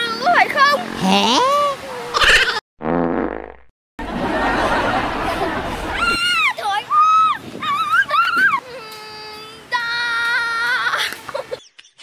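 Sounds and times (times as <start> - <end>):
cartoon fart sound effect: 0.9 - 1.5, 2.1 - 3.7.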